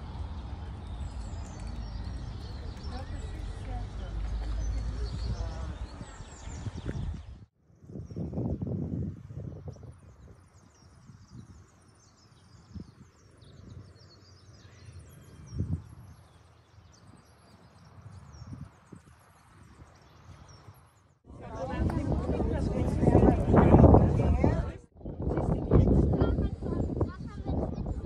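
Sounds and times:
low rumbles on microphone: 0.0s - 14.1s, 21.3s - 28.0s
birds chirping and singing: 0.1s - 28.0s.

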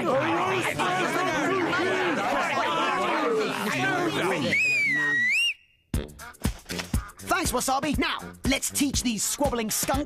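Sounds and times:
cartoon voices exclaiming: 0.0s - 5.2s
whistle-like tone: 4.4s - 5.9s
hip-hop beat: 6.0s - 10.0s.

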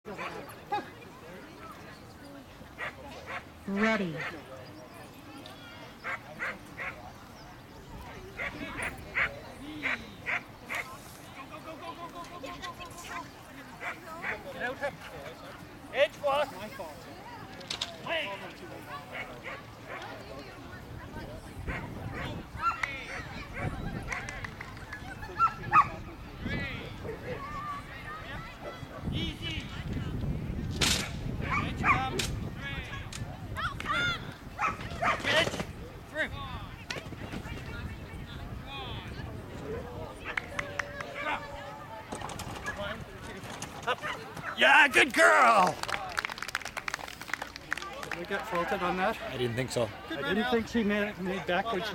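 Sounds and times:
dog barking: 31.4s - 32.0s, 34.6s - 35.2s.

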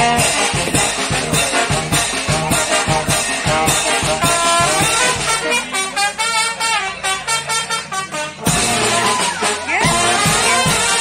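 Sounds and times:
steady drum beat: 0.0s - 7.3s, 7.9s - 11.0s
brass horns playing: 0.0s - 11.0s.

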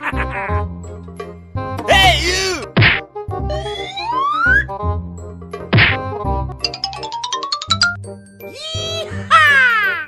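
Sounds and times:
background music: 0.0s - 10.0s
cartoon whack: 2.6s - 3.1s, 5.7s - 6.1s.

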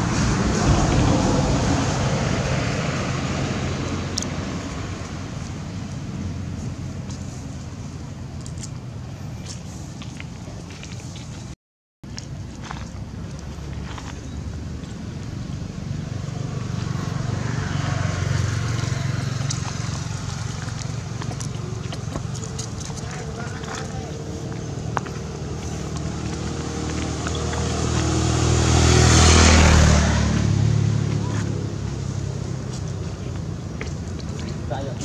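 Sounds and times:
vehicle passing: 0.0s - 8.3s, 12.6s - 35.0s
vehicle engine rumbling: 0.0s - 35.0s.

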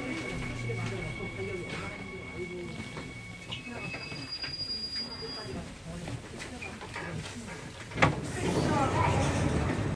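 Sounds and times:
train wheels squealing on rails: 0.4s - 5.6s
low rumble of running train: 8.0s - 9.9s.

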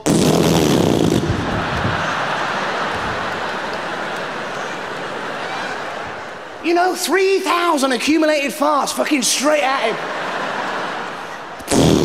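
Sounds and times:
audience laughing: 1.0s - 8.0s, 9.0s - 12.0s.

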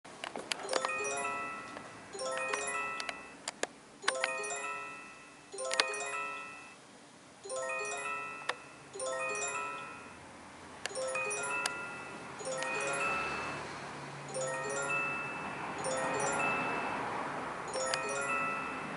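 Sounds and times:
glass prisms clinking: 0.6s - 3.4s, 4.0s - 6.8s, 7.4s - 10.3s, 10.9s - 13.6s, 14.2s - 17.0s, 17.6s - 18.9s.

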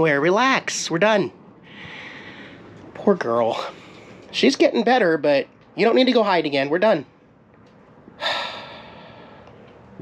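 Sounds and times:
person sighing: 8.2s - 9.2s.

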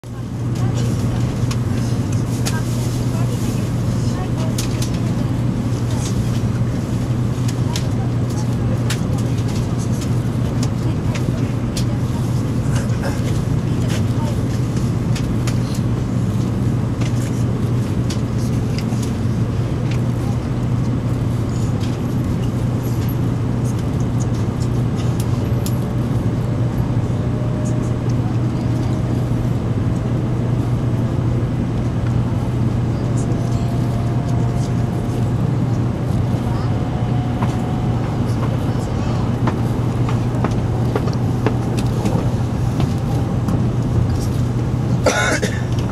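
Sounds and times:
train carriage low hum: 0.0s - 45.9s
faint rising train whine: 24.7s - 45.1s.

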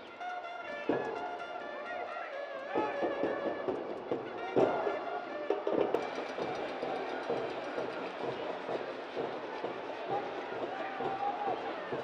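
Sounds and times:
stadium crowd roar: 0.0s - 12.0s.

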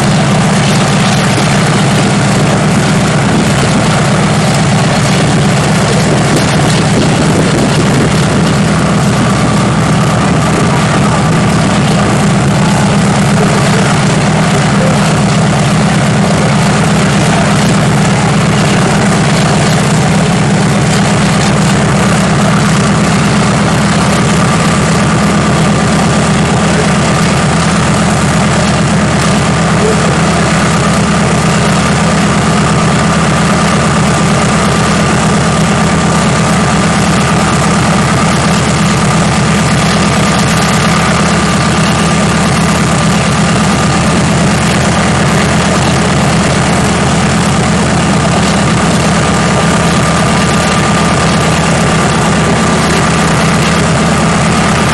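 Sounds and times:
radial aircraft engine idling: 0.0s - 54.9s.

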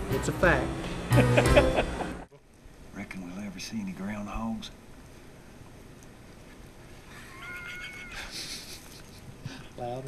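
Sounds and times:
high squeaky call: 7.2s - 8.3s.

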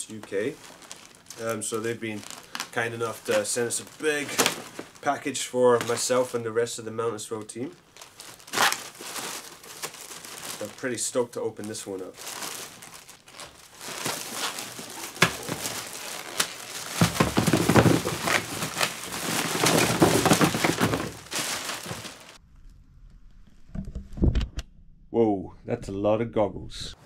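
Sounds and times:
plastic bag crinkling and rustling: 0.0s - 6.7s, 7.4s - 22.4s.

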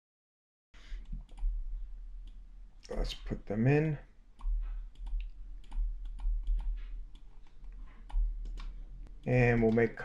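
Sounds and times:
faint room noise: 0.8s - 10.0s
soft computer mouse clicks: 1.0s - 1.5s, 4.4s - 8.8s, 9.5s - 9.9s.

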